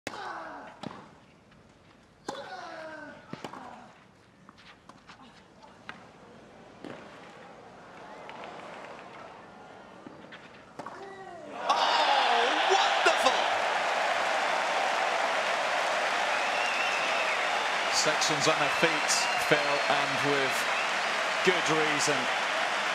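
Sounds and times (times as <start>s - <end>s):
crowd shouting and cheering: 11.5s - 22.9s.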